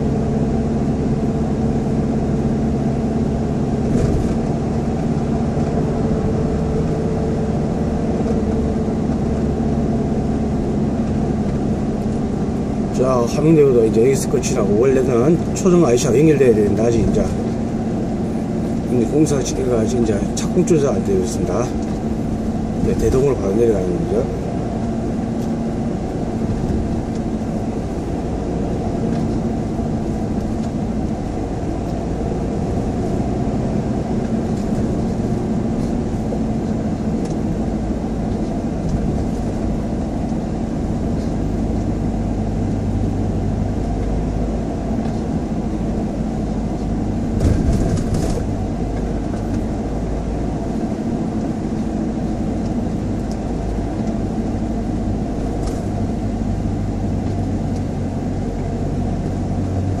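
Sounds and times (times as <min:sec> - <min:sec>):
car engine and tyre drone: 0:00.0 - 1:00.0.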